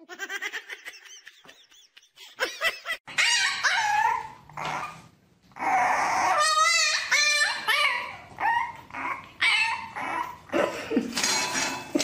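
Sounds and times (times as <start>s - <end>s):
puppy yapping: 3.1s - 5.0s, 5.6s - 10.4s.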